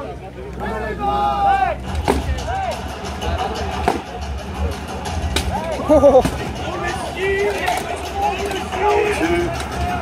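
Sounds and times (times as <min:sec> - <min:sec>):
people shouting: 0:00.7 - 0:10.0.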